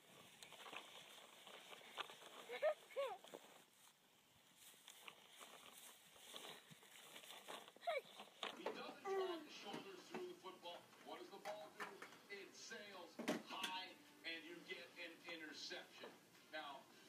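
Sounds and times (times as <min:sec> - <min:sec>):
faint rustling in grass: 0:00.0 - 0:08.5.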